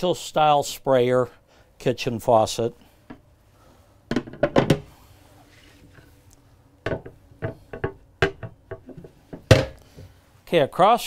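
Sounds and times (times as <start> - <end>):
hard knocks on countertop: 6.9 - 8.8.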